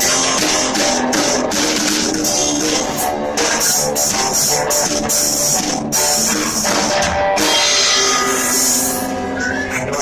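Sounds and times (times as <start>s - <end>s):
electric guitar notes: 0.0s - 10.0s
rock band playing: 0.0s - 10.0s
cymbals struck: 7.4s - 9.3s.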